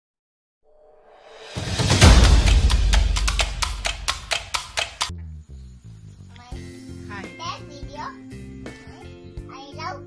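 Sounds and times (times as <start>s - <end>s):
low rumble: 1.2s - 4.9s
deep booming hit: 1.2s - 5.0s
sharp woodblock-like clicks: 2.2s - 5.1s.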